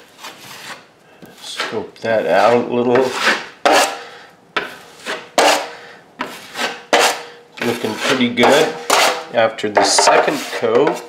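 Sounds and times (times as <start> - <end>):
putty knife scraping compound: 0.0 - 11.0.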